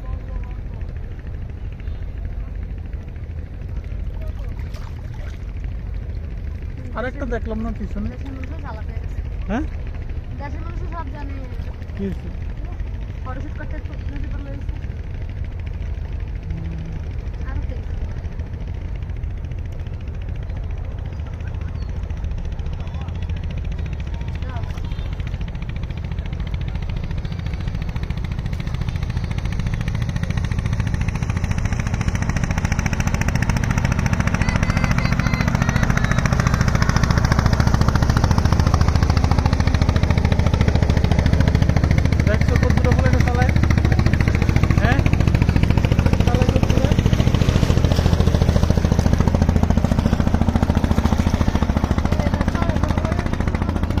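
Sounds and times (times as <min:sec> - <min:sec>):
faint indistinct voices: 0:00.0 - 0:07.0, 0:08.0 - 0:54.0
boat engine rumble: 0:00.0 - 0:54.0.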